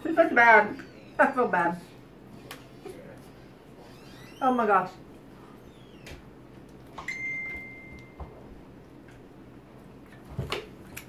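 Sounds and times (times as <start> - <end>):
high ringing ping: 7.0 - 8.2.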